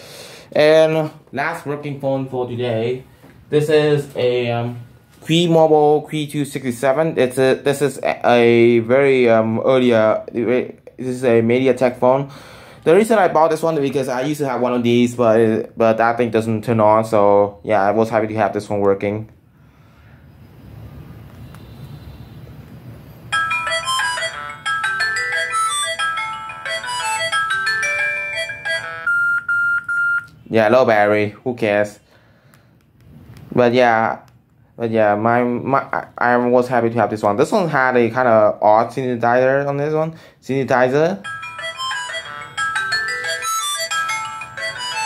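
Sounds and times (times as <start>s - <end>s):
phone start-up jingle: 23.3s - 30.3s, 41.2s - 45.0s.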